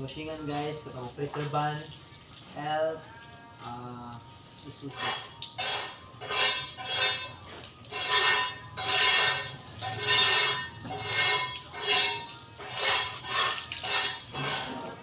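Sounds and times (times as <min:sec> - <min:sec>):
hose water spraying on metal van: 0:00.0 - 0:15.0.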